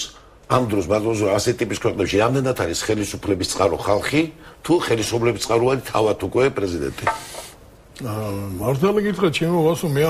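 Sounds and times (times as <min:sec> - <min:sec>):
faint hiss: 0:02.9 - 0:10.0.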